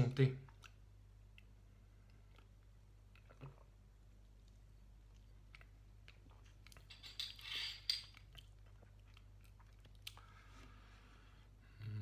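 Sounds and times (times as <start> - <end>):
lip smacks: 8.2 - 10.3.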